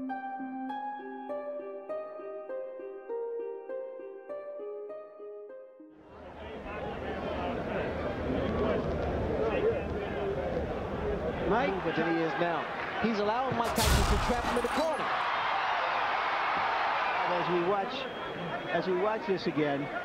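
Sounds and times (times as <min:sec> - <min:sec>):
crowd noise: 0:06.1 - 0:20.0.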